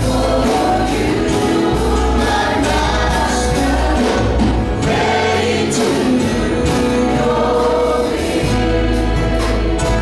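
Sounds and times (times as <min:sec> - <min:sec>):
church band playing: 0:00.0 - 0:10.0
voices singing together: 0:00.0 - 0:10.0.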